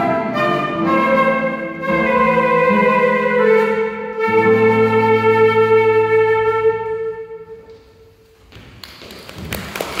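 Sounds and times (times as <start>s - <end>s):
audience applause: 8.8s - 10.0s.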